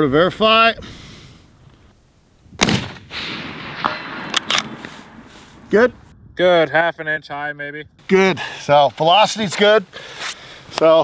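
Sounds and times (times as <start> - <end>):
rifle shot with rolling echo: 2.6 - 5.3.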